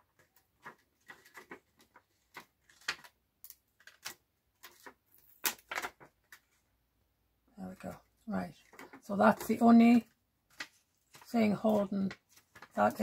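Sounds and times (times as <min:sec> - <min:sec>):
plastic sheet and card crinkling: 0:00.0 - 0:06.7, 0:07.8 - 0:13.0.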